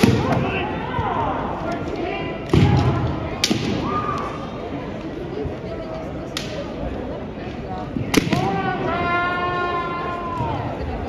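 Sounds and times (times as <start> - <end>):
bamboo swords cracking: 3.4 - 4.3, 6.4 - 6.6.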